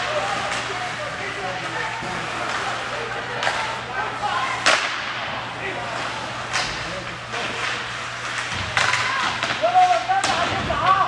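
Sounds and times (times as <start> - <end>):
hockey puck crack: 0.0 - 10.9
faint voices: 0.0 - 11.0.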